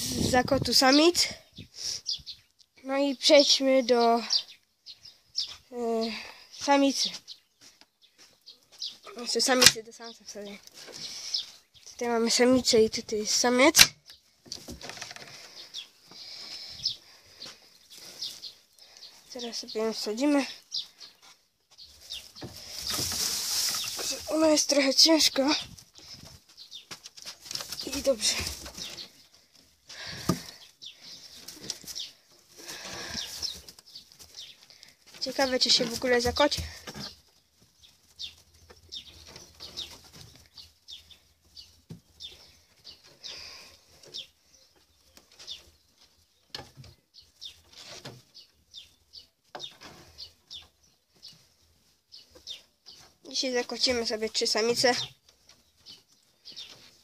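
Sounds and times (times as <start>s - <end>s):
small birds chirping: 0.0s - 57.0s
rustling and scuffing: 7.0s - 9.3s, 20.8s - 43.3s.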